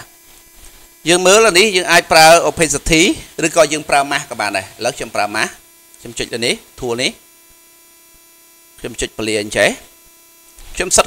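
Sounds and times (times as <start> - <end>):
electrical mains hum: 0.0 - 11.0
person speaking: 1.0 - 7.2, 10.7 - 11.0.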